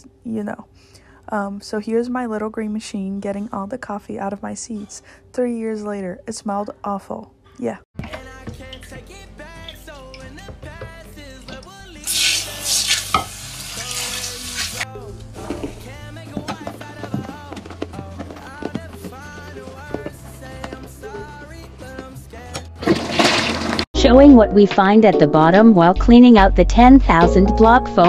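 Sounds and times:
background music: 0.8s - 28.0s
toilet brush stirring: 9.6s - 22.2s, 22.8s - 23.9s
cleaner fizzing in toilet water: 12.1s - 14.9s.

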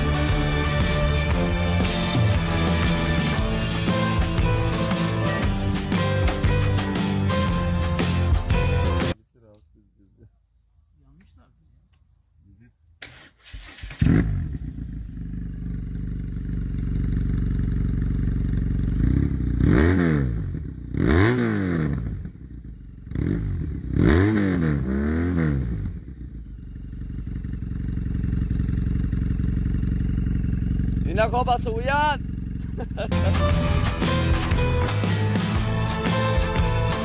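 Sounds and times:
motorcycle engine revving: 0.0s - 8.4s, 13.0s - 37.0s
motorcycle engine cranking: 13.0s - 19.6s, 26.8s - 31.1s
motorcycle engine idling: 14.0s - 21.0s, 21.9s - 24.0s, 25.6s - 34.6s.

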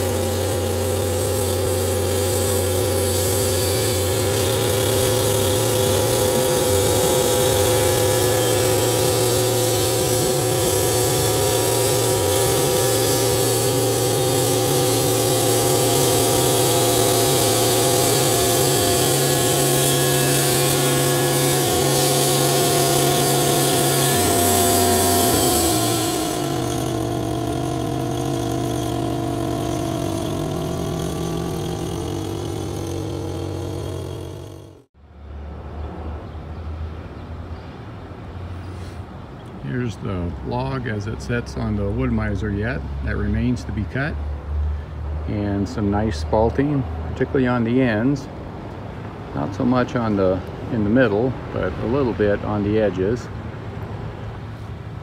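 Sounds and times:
band blade cutting wood: 0.0s - 34.9s
sawmill engine running: 0.0s - 34.9s, 39.7s - 54.0s.

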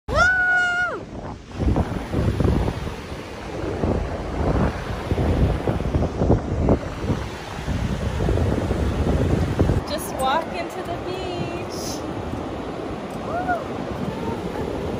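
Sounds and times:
ocean surf on beach: 0.1s - 14.9s
wind buffeting microphone: 0.1s - 14.9s.

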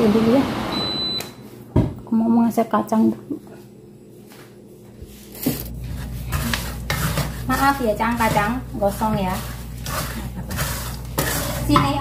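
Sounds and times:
wooden spatula scraping peanuts in wok: 5.7s - 12.0s.

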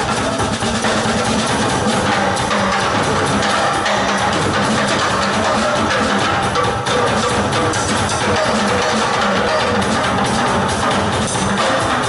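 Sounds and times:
drums: 0.0s - 12.0s
keyboards and bass held note: 0.8s - 11.6s.

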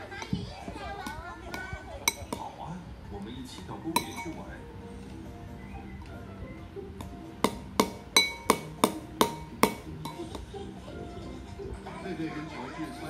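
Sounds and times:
faint cartoon music from tv: 0.0s - 13.0s
spoon clinking against ceramic bowl: 1.6s - 2.5s, 3.8s - 4.6s, 7.4s - 10.5s.

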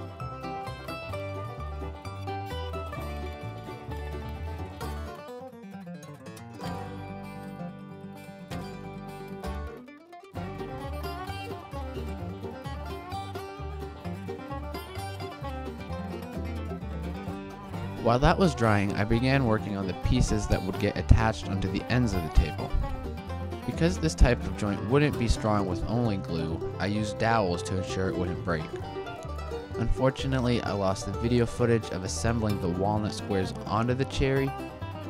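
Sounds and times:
plucked string instruments: 0.0s - 35.0s.

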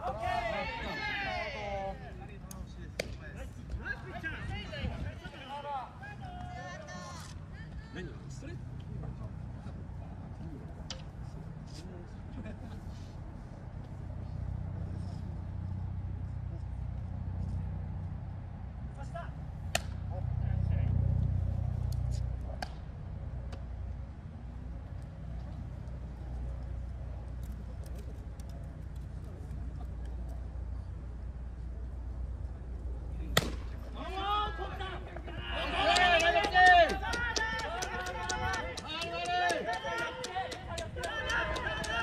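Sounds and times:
wind buffeting microphone: 3.6s - 5.4s, 40.0s - 42.0s
baseball bat hitting ball: 19.7s - 20.0s, 33.3s - 34.0s.

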